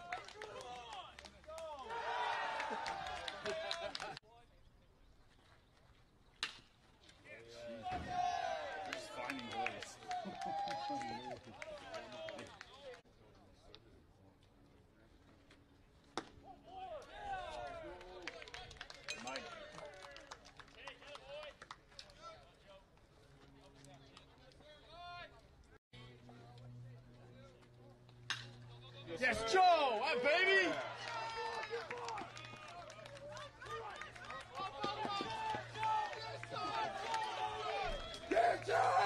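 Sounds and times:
voices shouting: 1.6s - 4.1s, 7.5s - 12.2s, 33.4s - 39.0s
hand claps: 30.7s - 37.3s.

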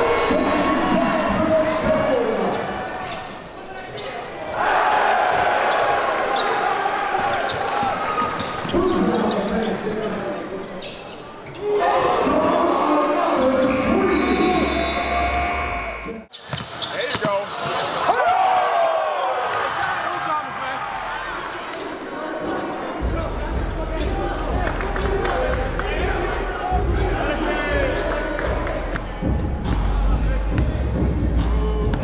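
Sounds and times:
voices echoing in a hall: 0.0s - 15.5s, 16.2s - 32.0s.

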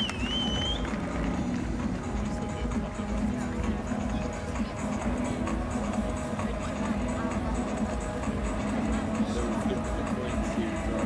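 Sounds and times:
high wavering whistle: 0.0s - 0.9s
crowd murmur: 0.0s - 11.0s
music playing: 0.0s - 11.0s.

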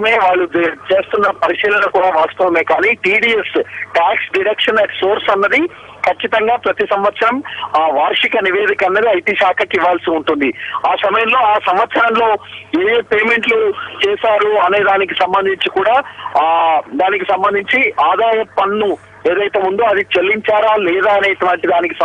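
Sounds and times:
person talking over telephone: 0.0s - 22.0s.

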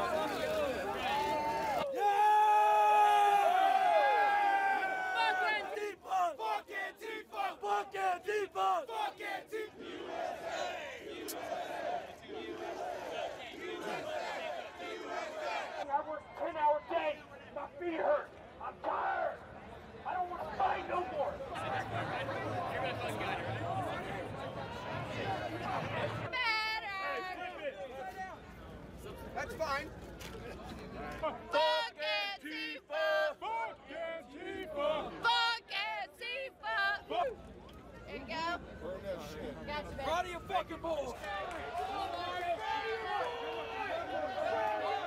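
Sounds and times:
men's raised voices: 0.0s - 19.4s
crowd yelling and cheering: 0.0s - 28.1s, 31.0s - 45.0s
murmur of voices: 0.0s - 45.0s
crowd of men chanting: 3.8s - 15.8s, 31.6s - 35.2s.

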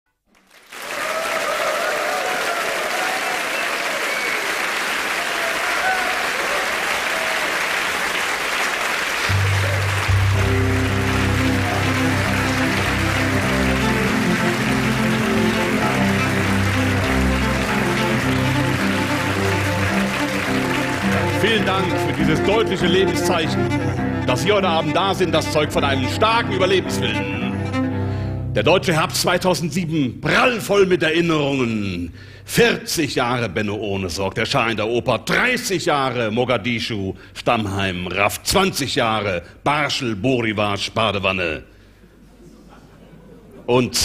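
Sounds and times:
audience applauding: 0.3s - 27.5s
cello bowed low notes: 9.3s - 28.9s.

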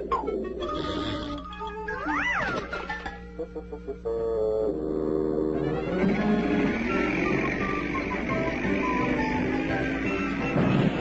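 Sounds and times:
background music: 0.0s - 11.0s
cartoon cat yowling: 2.0s - 2.5s.

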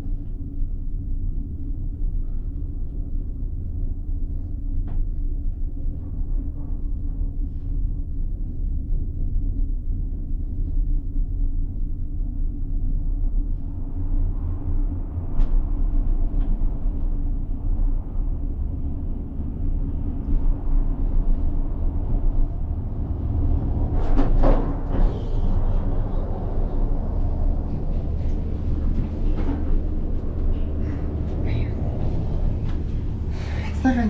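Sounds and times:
gondola cabin rumble and hum: 0.0s - 34.0s.

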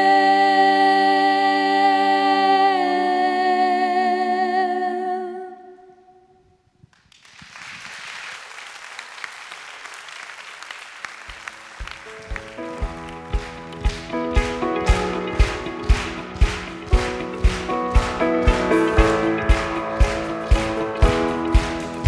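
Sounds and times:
women singing a cappella: 0.0s - 6.2s
audience applause: 7.0s - 22.0s.

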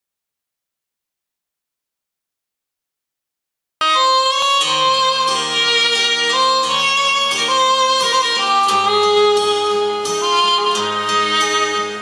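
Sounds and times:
lead line with bending notes: 3.8s - 12.0s
strummed acoustic guitar: 4.0s - 12.0s.

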